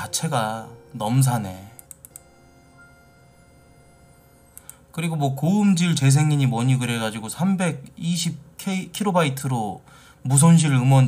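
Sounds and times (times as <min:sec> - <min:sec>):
faint steady hum: 0:00.0 - 0:11.0
soft clicks: 0:01.8 - 0:02.3, 0:04.5 - 0:04.8.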